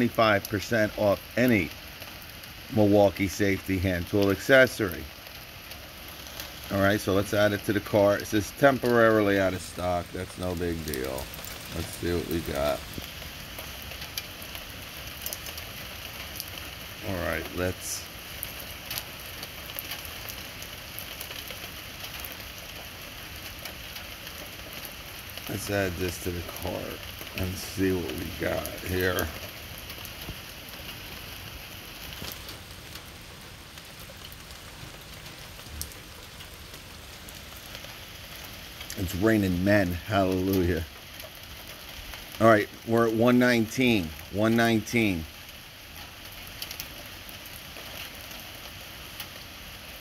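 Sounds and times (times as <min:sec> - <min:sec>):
hiss-like background noise: 0:00.0 - 0:50.0
steady rain falling: 0:00.0 - 0:50.0.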